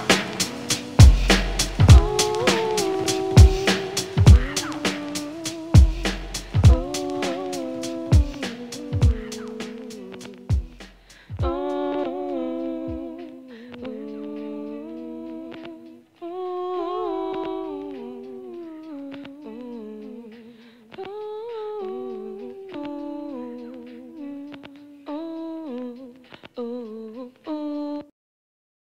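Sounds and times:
person humming a slow melody: 0.0 - 28.1.

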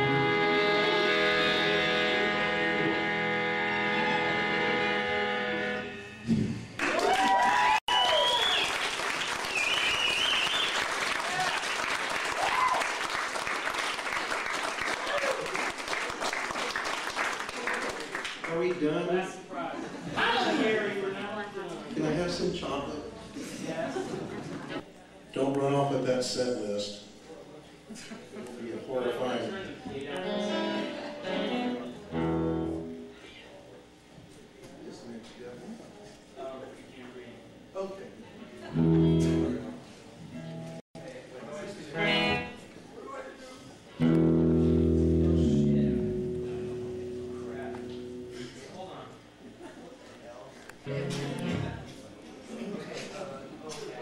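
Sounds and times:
electric guitar and band chord: 0.0 - 6.6, 30.2 - 33.1, 38.7 - 39.8, 44.0 - 48.7, 50.8 - 51.9
audience whoops and shouts: 6.8 - 8.8, 12.3 - 13.1, 15.0 - 15.6
audience applause: 6.8 - 18.6.

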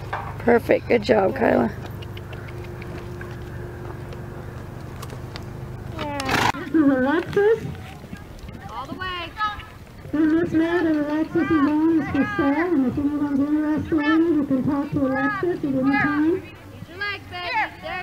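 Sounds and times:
low hum: 0.0 - 7.8.

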